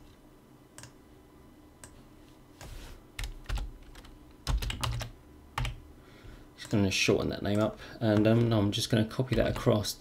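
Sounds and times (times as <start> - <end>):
computer keyboard typing: 3.2 - 5.8, 9.2 - 9.7.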